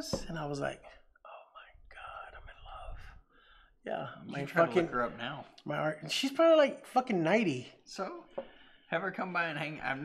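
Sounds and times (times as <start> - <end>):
man speaking: 0.0 - 3.1, 3.8 - 10.0
man whispering: 0.7 - 5.0.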